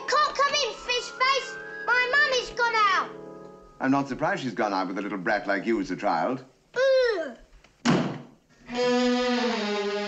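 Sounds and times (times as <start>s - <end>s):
door slamming shut: 7.8s - 8.3s.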